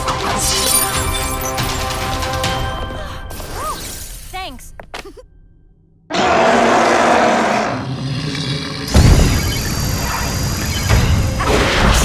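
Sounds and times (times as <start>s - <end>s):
harsh noise with rumbling tail: 8.8s - 12.0s.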